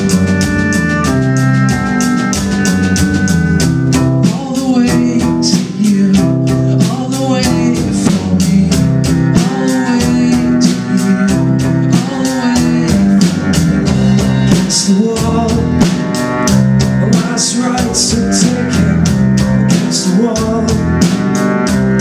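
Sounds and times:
drum kit steady beat: 0.0s - 22.0s
electric guitar: 0.0s - 22.0s
strummed acoustic guitar: 0.0s - 22.0s.

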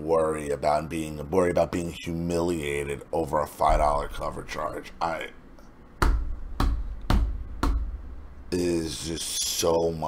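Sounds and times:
sharp knocks with deep thud: 6.0s - 8.2s.

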